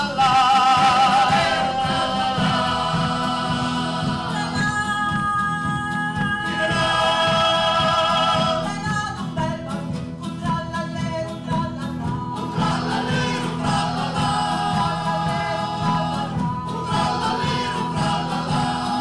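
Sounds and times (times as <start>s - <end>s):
men's choir singing: 0.0s - 9.1s, 12.2s - 19.0s
strummed acoustic guitars: 0.0s - 19.0s.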